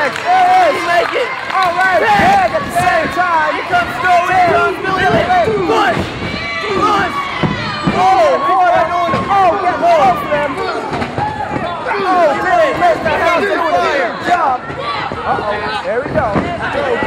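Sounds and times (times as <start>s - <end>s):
excited voices shouting: 0.0s - 15.9s
crowd noise: 0.0s - 17.0s
faint thuds: 2.0s - 17.0s.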